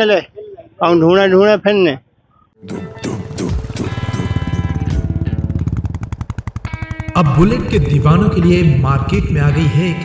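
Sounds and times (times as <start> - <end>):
motorcycle engine thumping: 3.4 - 7.7.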